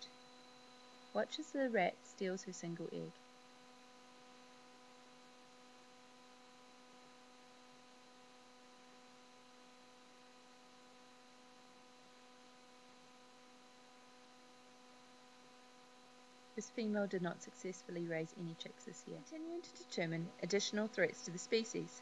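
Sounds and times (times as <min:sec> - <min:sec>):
faint electrical hum: 0:00.0 - 0:22.0.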